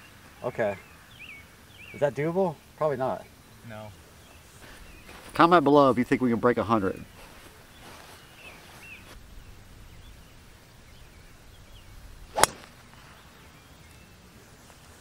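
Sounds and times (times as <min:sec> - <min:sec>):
faint outdoor background: 0:00.0 - 0:15.0
golf club striking ball: 0:12.3 - 0:12.8.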